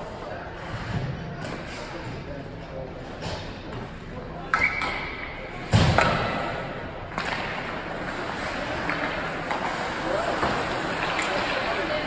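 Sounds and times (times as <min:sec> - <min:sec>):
hockey sticks and puck cracking: 0:04.4 - 0:12.0.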